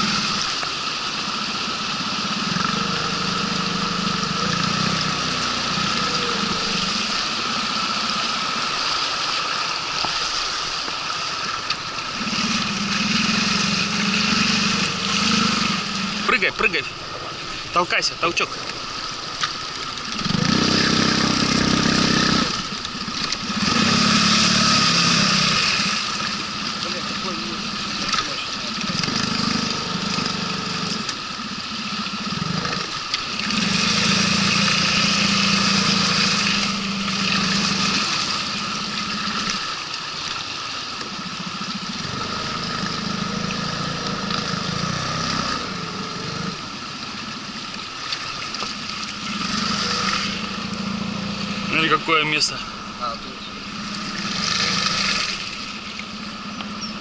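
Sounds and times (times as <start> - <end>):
outboard motor: 0.0 - 57.0
water rushing: 0.0 - 57.0.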